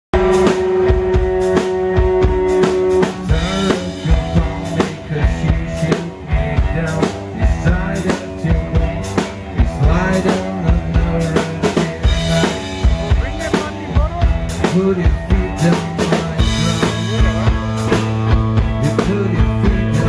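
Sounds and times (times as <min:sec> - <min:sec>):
live rock band playing: 0:00.1 - 0:20.0
man singing: 0:00.2 - 0:20.0.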